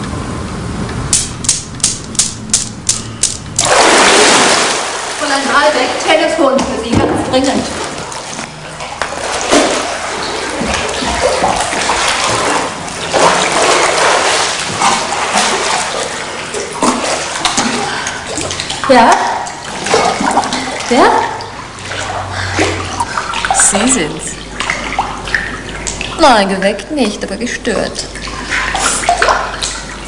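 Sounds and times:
swimmer splashing in pool: 3.6 - 6.6, 7.2 - 26.6.

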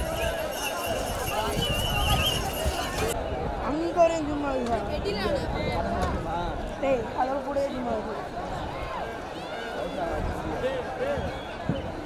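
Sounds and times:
outdoor crowd noise: 0.0 - 12.0.

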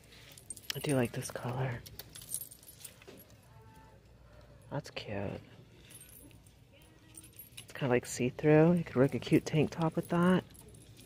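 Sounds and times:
chain bracelet jingling: 0.0 - 3.8, 5.7 - 11.0.

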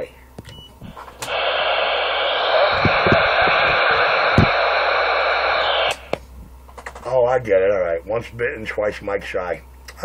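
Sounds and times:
radio static hiss: 0.8 - 6.2.

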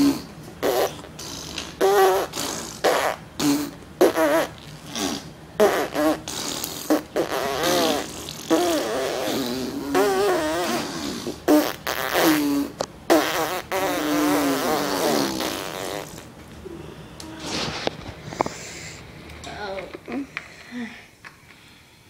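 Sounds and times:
imitation fart noises: 0.0 - 16.4.

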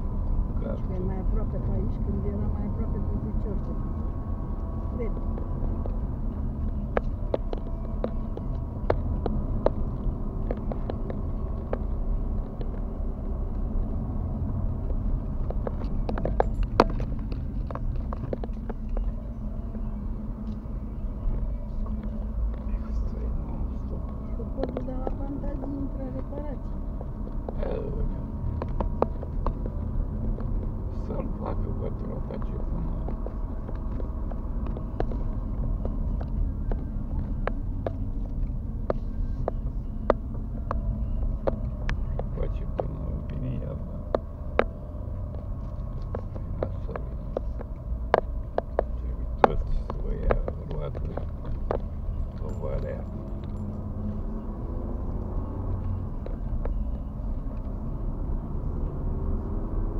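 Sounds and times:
car engine and tyre rumble: 0.0 - 59.9.

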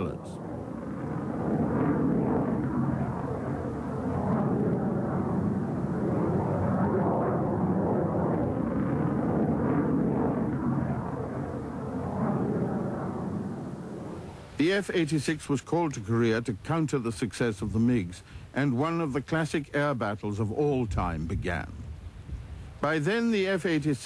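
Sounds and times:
jet engine rumble: 0.0 - 24.0.

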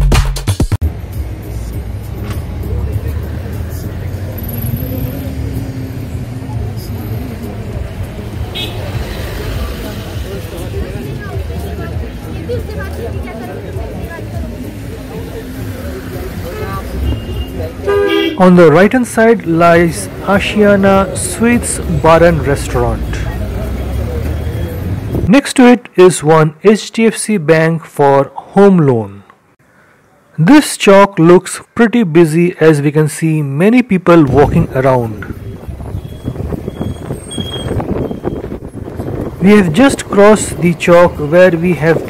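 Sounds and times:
traffic engine rumble: 0.8 - 25.4, 33.2 - 42.0
people talking: 2.5 - 8.2, 8.9 - 29.2, 30.4 - 35.4, 39.4 - 42.0
vehicle horn tooting: 8.5 - 9.0, 16.4 - 18.5.

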